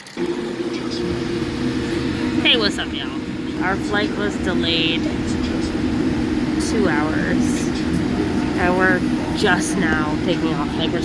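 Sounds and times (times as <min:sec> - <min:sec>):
airliner cabin hum: 0:00.0 - 0:11.0.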